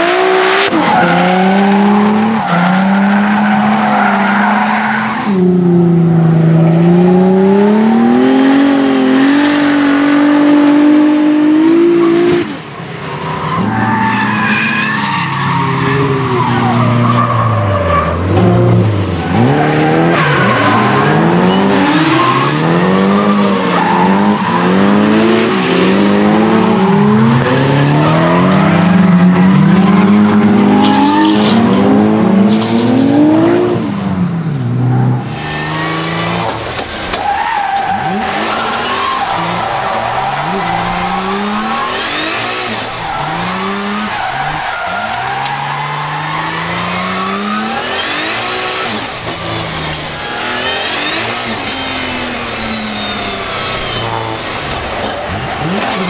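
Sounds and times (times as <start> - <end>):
tyres skidding: 0.0 - 56.0.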